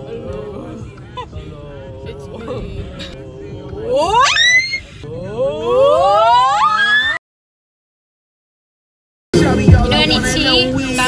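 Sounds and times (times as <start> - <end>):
women's voices sliding to high squeal: 4.0 - 4.9, 5.6 - 7.2.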